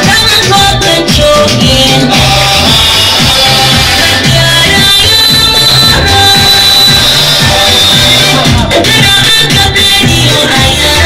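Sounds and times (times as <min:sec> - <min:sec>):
amplified band music: 0:00.0 - 0:11.0
electronic drum beat: 0:00.0 - 0:11.0.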